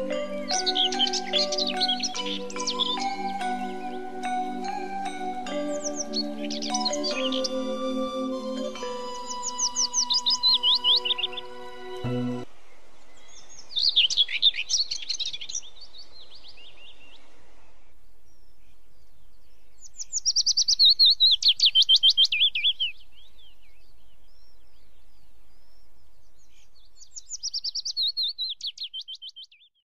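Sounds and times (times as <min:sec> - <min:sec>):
songbird singing: 0:00.0 - 0:29.8.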